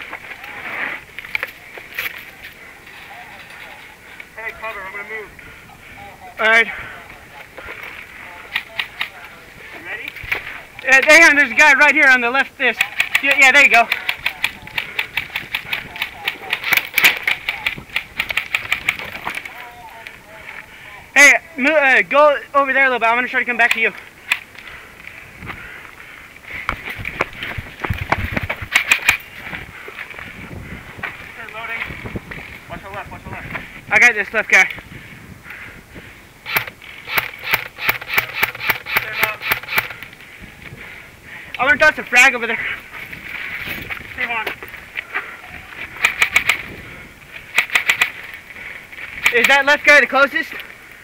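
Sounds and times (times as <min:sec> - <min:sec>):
airsoft gunfire clicks: 0:36.5 - 0:40.0, 0:47.5 - 0:48.2.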